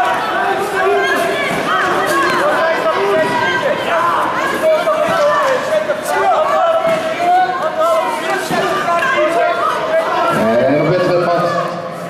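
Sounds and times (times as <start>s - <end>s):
crowd talking and calling out: 0.0s - 12.0s.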